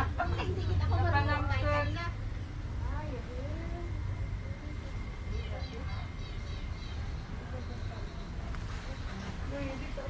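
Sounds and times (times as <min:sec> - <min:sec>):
people talking: 0:00.0 - 0:10.0
steady low rumble: 0:00.0 - 0:10.0.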